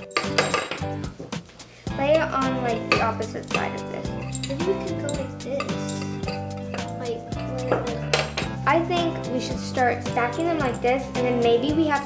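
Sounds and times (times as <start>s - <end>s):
steel nails clinking: 0.0s - 1.0s, 2.8s - 8.6s
background music: 0.0s - 12.0s.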